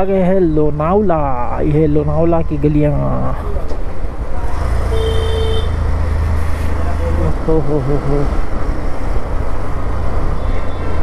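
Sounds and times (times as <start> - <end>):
road noise: 0.0 - 11.0.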